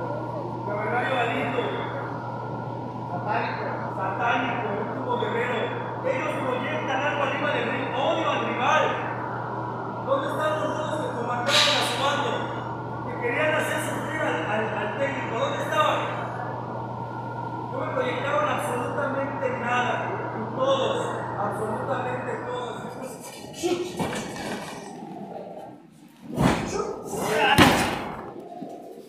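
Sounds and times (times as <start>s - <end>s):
steady electrical hum: 0.0s - 29.0s
man talking over microphone: 3.1s - 9.2s, 10.0s - 16.4s, 17.7s - 24.4s.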